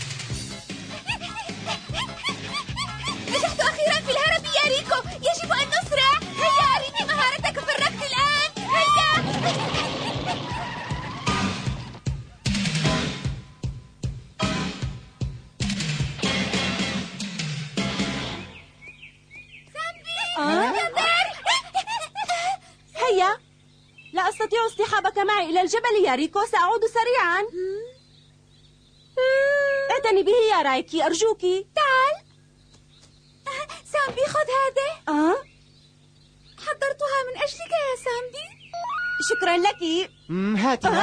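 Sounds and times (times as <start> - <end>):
background music: 0.0 - 18.8
cartoon noisy rush: 4.9 - 12.0.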